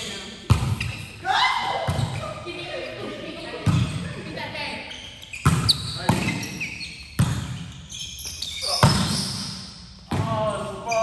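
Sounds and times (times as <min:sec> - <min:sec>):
volleyball slaps echoing: 0:00.4 - 0:02.4, 0:03.6 - 0:04.2, 0:05.4 - 0:06.4, 0:07.2 - 0:07.7, 0:08.7 - 0:10.4.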